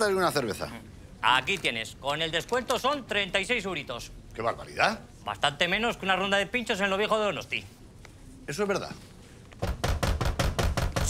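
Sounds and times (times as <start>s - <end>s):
rapid knocking with low thud: 9.6s - 11.0s.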